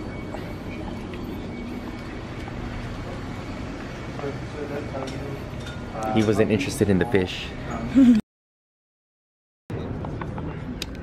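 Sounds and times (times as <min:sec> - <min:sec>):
shop interior hum: 0:00.0 - 0:08.2, 0:09.7 - 0:11.0.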